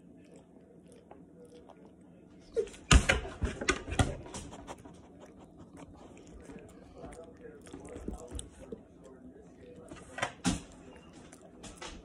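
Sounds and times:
dog chewing wet food: 0:00.0 - 0:12.0.

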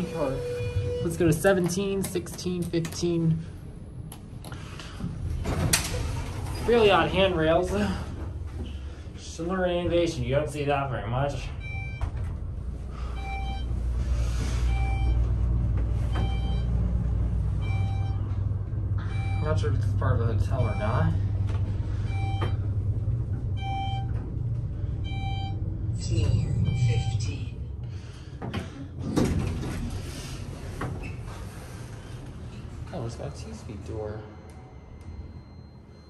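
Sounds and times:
elevator hum and rumble: 0:00.0 - 0:36.0.

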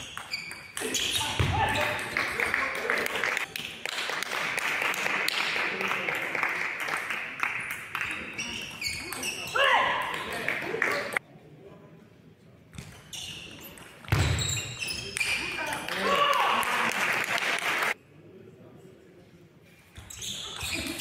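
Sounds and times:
loud shouting: 0:16.0 - 0:16.9.

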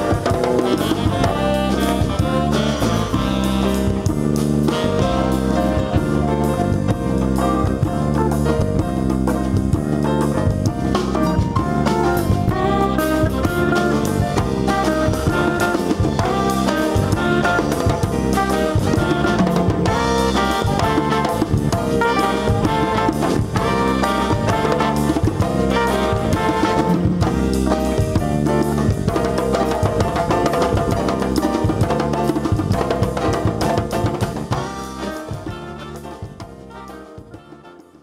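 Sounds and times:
live jazz band playing: 0:00.0 - 0:38.0.

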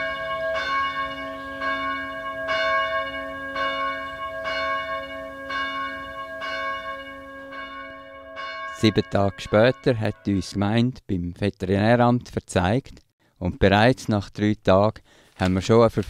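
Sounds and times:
church bell tolling: 0:00.0 - 0:10.5.

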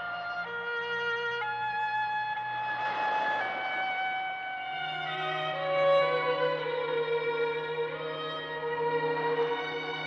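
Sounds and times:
violin holding long high notes: 0:00.0 - 0:10.0.

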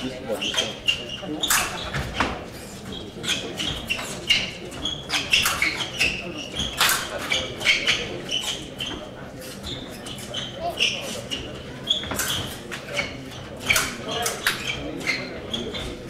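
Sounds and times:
shoes squeaking on floor: 0:00.0 - 0:16.0.

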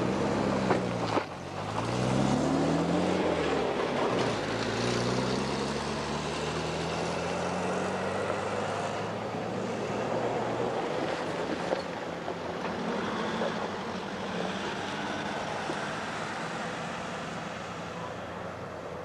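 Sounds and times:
vehicle engine accelerating: 0:00.0 - 0:11.8
road and wind noise: 0:00.0 - 0:19.0.

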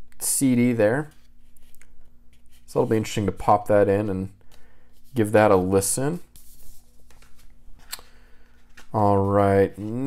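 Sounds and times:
paper and card handling: 0:01.0 - 0:03.6, 0:04.4 - 0:10.0.

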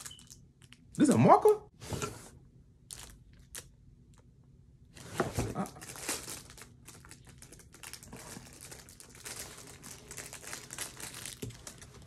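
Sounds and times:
packaging crinkling and rustling: 0:02.8 - 0:03.7, 0:05.0 - 0:12.0.

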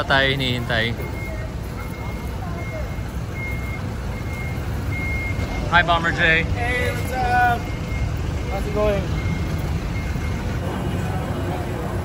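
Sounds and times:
reversing alarm beeps: 0:00.0 - 0:11.1
low engine rumble: 0:00.0 - 0:12.0.

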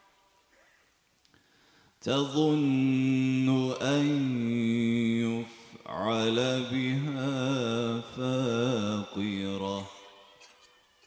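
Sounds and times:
man chanting into a microphone: 0:02.0 - 0:10.4.

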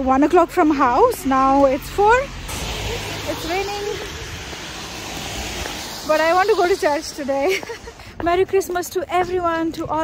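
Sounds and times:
car tyres hissing on wet road: 0:01.4 - 0:08.7.

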